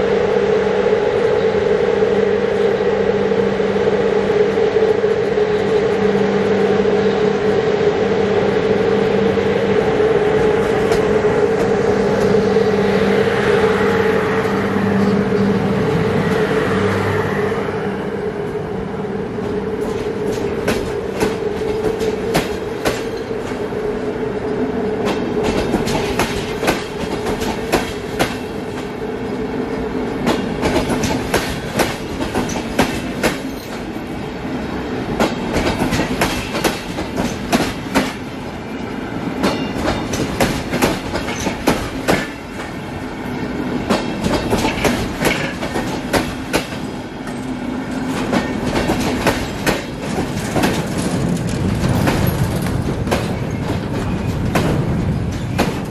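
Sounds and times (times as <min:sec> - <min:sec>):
train rolling hum: 0:00.0 - 0:55.9
train wheels clicking over rail joints: 0:19.8 - 0:23.7, 0:25.0 - 0:29.0, 0:29.8 - 0:34.2, 0:35.1 - 0:38.4, 0:39.4 - 0:42.8, 0:43.8 - 0:55.9.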